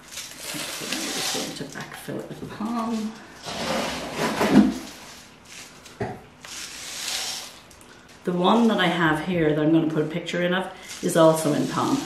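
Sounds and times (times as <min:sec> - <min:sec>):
granular potting mix pouring: 0:00.0 - 0:09.5, 0:10.6 - 0:12.0.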